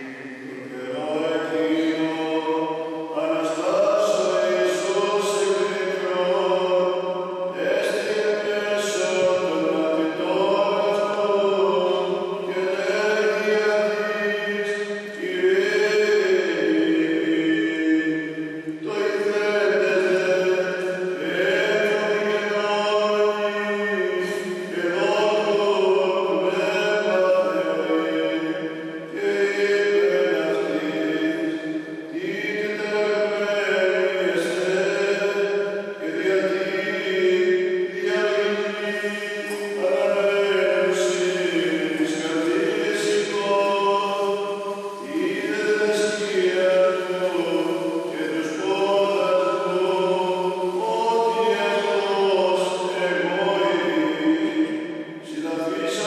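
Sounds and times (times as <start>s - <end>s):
man chanting: 0.0s - 56.0s.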